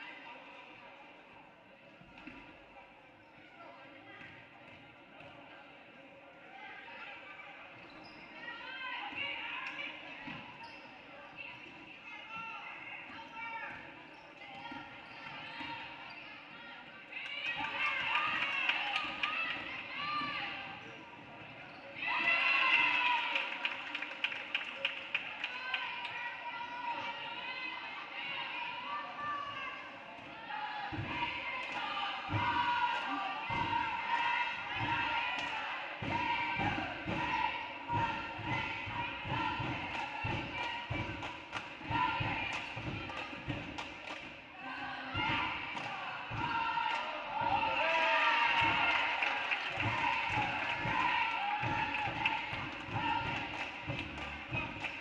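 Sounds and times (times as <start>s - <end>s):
people shouting: 44.6s - 53.5s.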